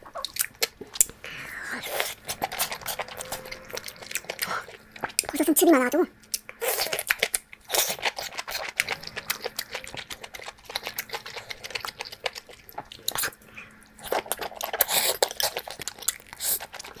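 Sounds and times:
person chewing crunchy food: 0:00.0 - 0:05.5, 0:06.1 - 0:17.0.

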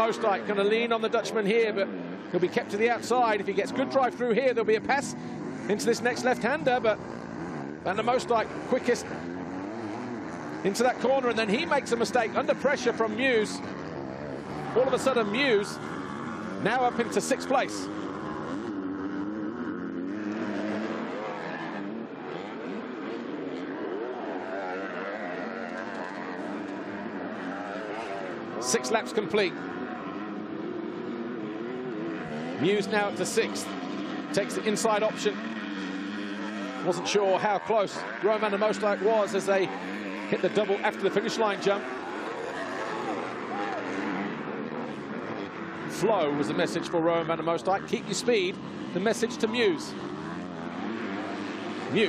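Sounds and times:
motocross bikes racing: 0:00.0 - 0:52.0.

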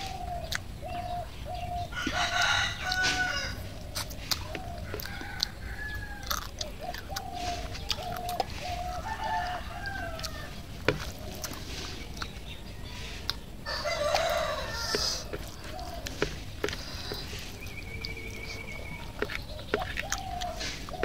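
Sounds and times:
chickens clucking: 0:00.0 - 0:21.0
rooster crowing: 0:01.8 - 0:03.8, 0:04.6 - 0:06.5, 0:08.2 - 0:10.6, 0:13.6 - 0:16.0.

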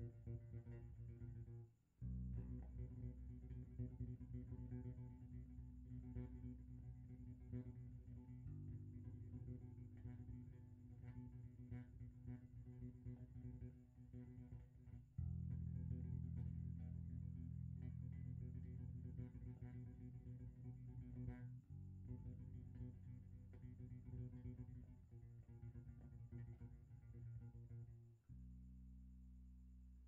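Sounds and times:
electric bass guitar line: 0:00.0 - 0:30.0.

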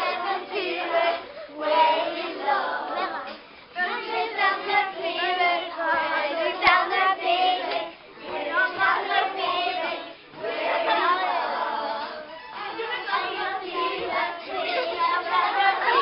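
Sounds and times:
children singing together: 0:00.0 - 0:16.0.

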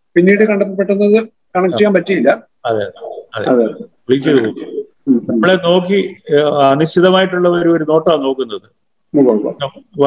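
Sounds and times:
men talking over video call: 0:00.0 - 0:10.0.

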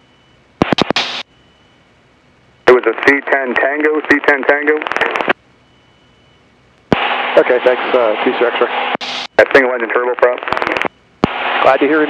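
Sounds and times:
radio key click with static: 0:00.6 - 0:01.2, 0:10.2 - 0:11.5
radio transmission with clicks: 0:00.6 - 0:01.3, 0:02.7 - 0:05.4, 0:06.8 - 0:12.0
faint radio hiss: 0:02.6 - 0:05.4, 0:06.9 - 0:12.0.

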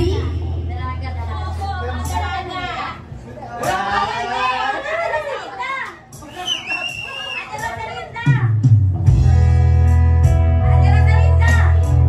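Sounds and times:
people talking: 0:00.0 - 0:08.6, 0:10.7 - 0:11.8.

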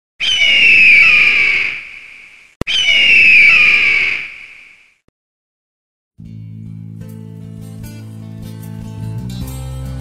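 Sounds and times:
bird of prey screeching: 0:00.2 - 0:04.8.

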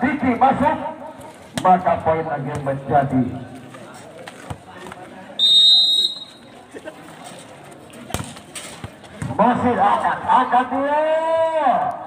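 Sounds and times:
faint crowd voices: 0:00.0 - 0:12.0
referee's whistle blast: 0:05.4 - 0:06.4.

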